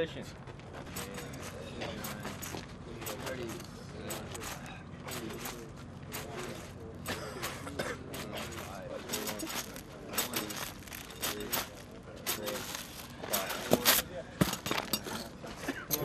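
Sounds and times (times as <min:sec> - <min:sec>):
men talking and calling out: 0:00.0 - 0:16.0
metal ammunition cans clanking: 0:00.8 - 0:16.0.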